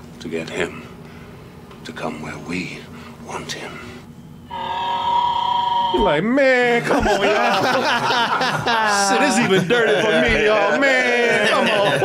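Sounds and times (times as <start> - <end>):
creature high-pitched wail: 4.5 - 6.2.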